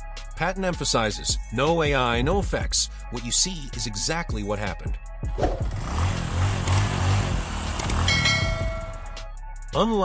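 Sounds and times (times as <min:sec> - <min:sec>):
motorcycle engine rumble: 0:05.4 - 0:09.2.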